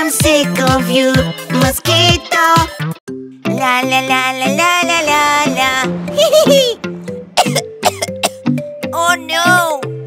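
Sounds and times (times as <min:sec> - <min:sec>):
children's song music: 0:00.0 - 0:10.0
child coughing: 0:07.4 - 0:08.4.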